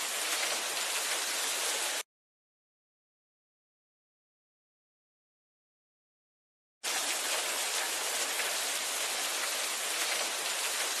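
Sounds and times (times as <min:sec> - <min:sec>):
steady rain falling: 0:00.0 - 0:02.0, 0:06.8 - 0:11.0.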